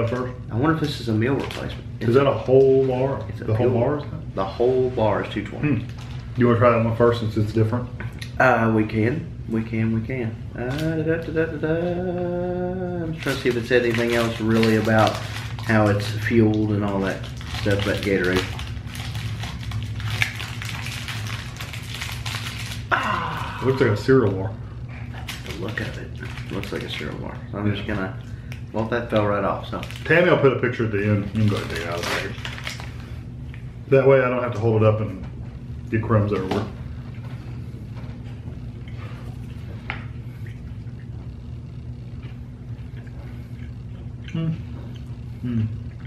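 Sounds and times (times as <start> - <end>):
foil wrapper crinkling: 0.0 - 3.4, 4.7 - 7.2, 10.6 - 11.6, 13.1 - 24.4, 25.1 - 28.2, 28.8 - 33.2
low room hum: 0.0 - 46.0.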